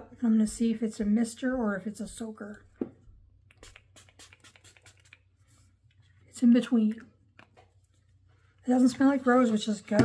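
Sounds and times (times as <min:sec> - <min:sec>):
spray bottle clicking: 0:03.5 - 0:05.2.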